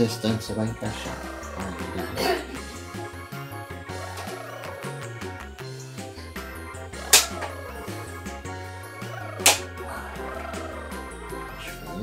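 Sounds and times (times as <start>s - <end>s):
background music with steady beat: 0.0s - 12.0s
loud plastic snaps: 7.1s - 7.5s, 9.4s - 9.7s.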